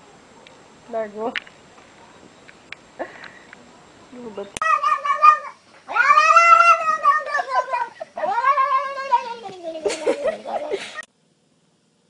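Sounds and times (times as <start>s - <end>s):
cat yowling: 4.6s - 10.7s.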